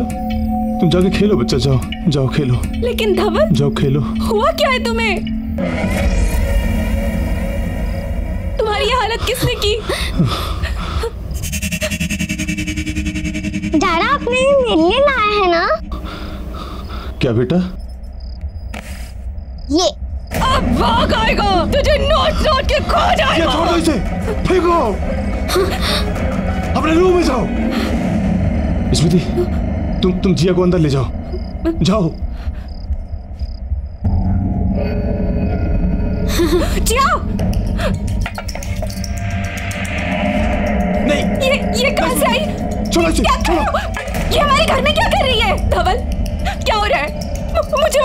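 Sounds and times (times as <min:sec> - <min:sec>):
crickets chirping: 0:00.0 - 0:48.0
pulsing electronic tone: 0:11.3 - 0:17.1.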